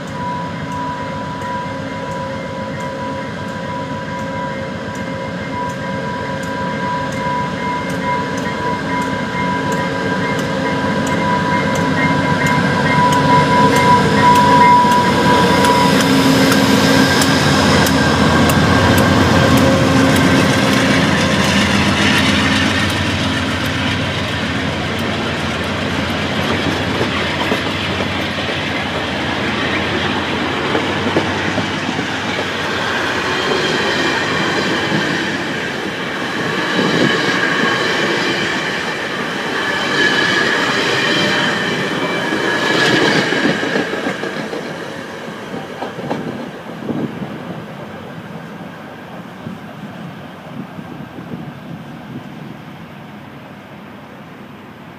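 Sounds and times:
train wheel clicks: 0:00.0 - 0:47.3
diesel locomotive engine: 0:00.0 - 0:54.9.

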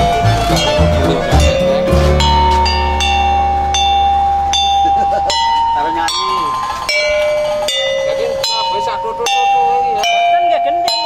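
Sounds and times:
metal bars struck with mallet: 0:00.0 - 0:11.0.

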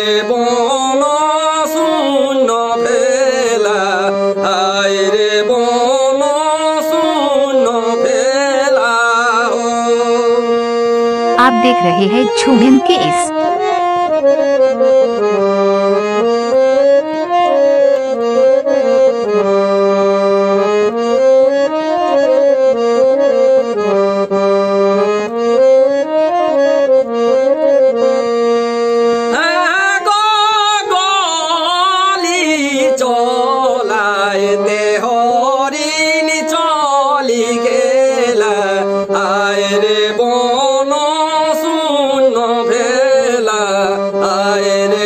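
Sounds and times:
harmonium folk melody: 0:00.0 - 0:45.0
man singing with vibrato: 0:11.4 - 0:13.3.

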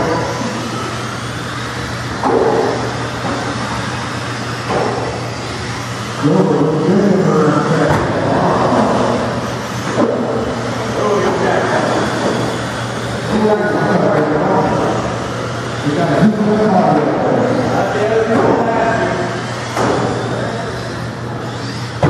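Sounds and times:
rc cars whirring: 0:00.0 - 0:22.0.

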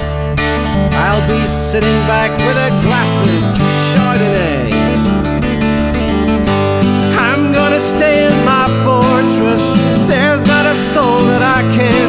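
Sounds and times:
fingerpicked acoustic guitar: 0:00.0 - 0:12.0
steady bass line: 0:00.0 - 0:12.0.

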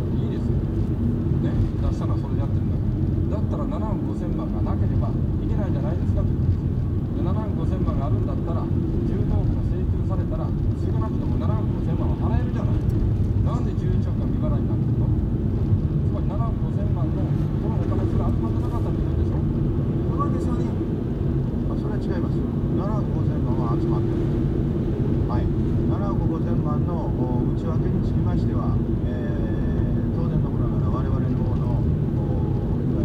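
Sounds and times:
car engine and tyres rumbling: 0:00.0 - 0:33.0.

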